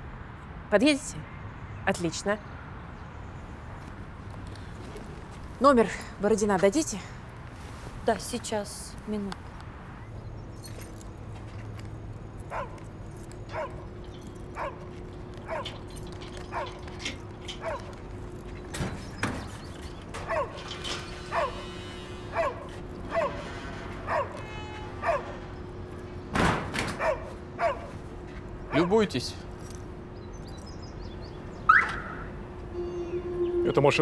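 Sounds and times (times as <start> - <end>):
dog barking: 12.5 - 12.8, 13.5 - 13.9, 14.6 - 15.8, 16.5 - 16.8, 17.6 - 18.0, 20.2 - 20.7, 21.3 - 21.7, 22.3 - 23.5, 24.1 - 24.4, 25.0 - 25.4, 27.0 - 28.0.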